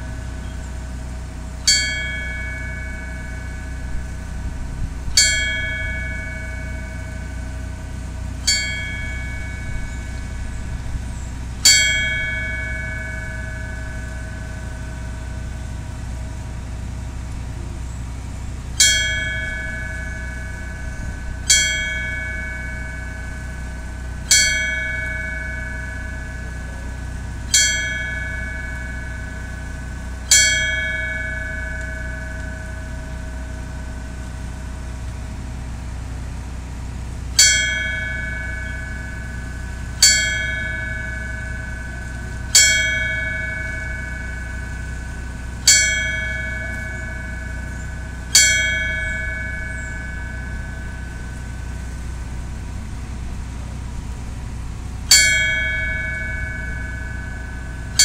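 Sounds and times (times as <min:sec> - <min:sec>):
fire bell ringing: 0:00.0 - 0:58.0.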